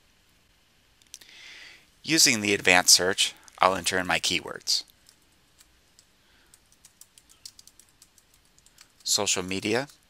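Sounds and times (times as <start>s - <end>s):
keyboard key clicks: 6.0s - 9.0s.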